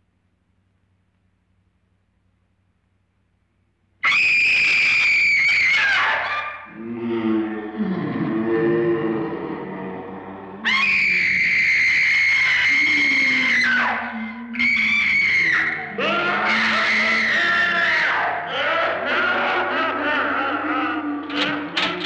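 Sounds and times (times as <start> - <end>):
high-pitched screams: 4.0 - 22.0
wails: 4.0 - 22.0
eerie horror film music: 5.7 - 22.0.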